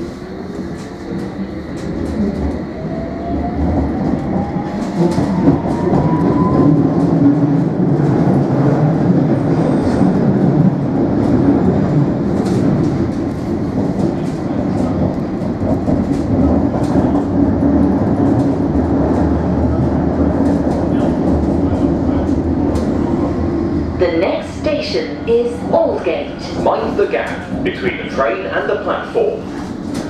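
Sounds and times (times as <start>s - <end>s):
train wheels rumbling on rails: 0.0s - 30.0s.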